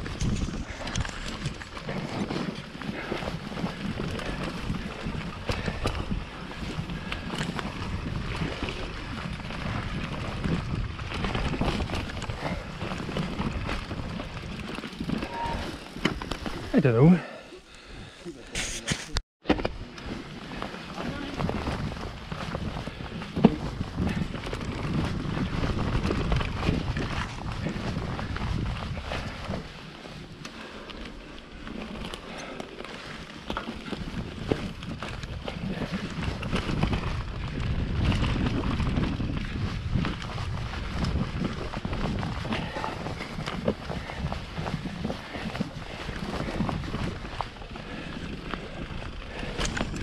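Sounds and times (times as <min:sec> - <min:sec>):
bike clicks and rattles: 0:00.0 - 0:16.7, 0:17.7 - 0:50.0
wind buffeting microphone: 0:00.0 - 0:16.8, 0:20.4 - 0:30.2, 0:33.7 - 0:50.0
bike tyres rumbling on dirt: 0:00.0 - 0:50.0.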